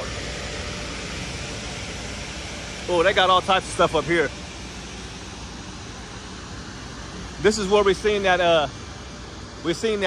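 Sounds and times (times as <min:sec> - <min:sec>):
outdoor rumble and hiss: 0:00.0 - 0:10.0.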